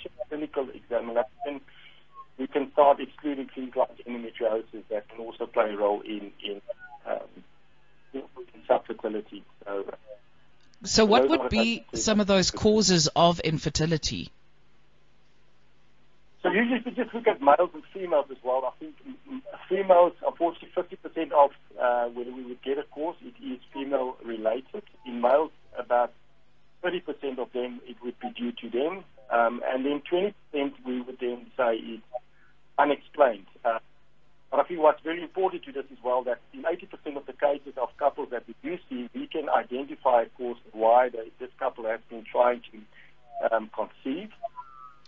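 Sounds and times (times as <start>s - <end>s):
person talking: 10.8s - 14.3s, 16.4s - 26.1s.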